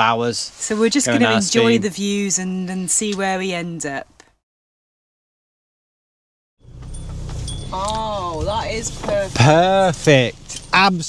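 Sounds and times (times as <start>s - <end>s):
voice trailing off: 1.1s - 1.8s.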